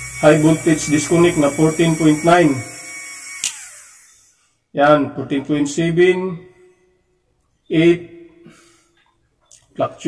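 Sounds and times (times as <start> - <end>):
faint high electrical whine: 0.0 - 4.4
man speaking: 0.2 - 2.7, 4.8 - 6.6, 7.7 - 8.4, 9.8 - 10.0.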